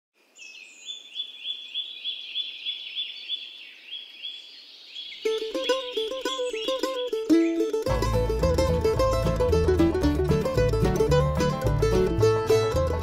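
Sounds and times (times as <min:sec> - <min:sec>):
plucked-string music: 0:05.3 - 0:13.0.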